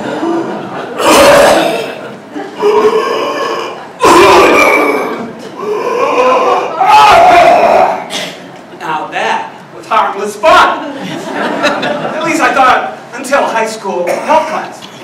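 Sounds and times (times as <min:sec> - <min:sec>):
person making strained vocal sounds: 0:01.0 - 0:02.0, 0:02.6 - 0:08.1.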